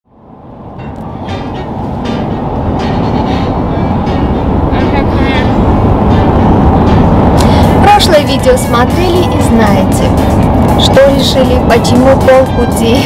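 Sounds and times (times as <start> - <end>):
car road and engine rumble: 0.1 - 13.0.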